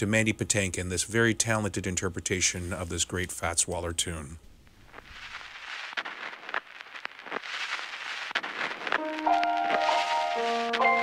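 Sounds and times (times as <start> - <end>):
old record hiss and crackles: 0.0 - 11.0
instrumental music with held notes: 9.0 - 11.0.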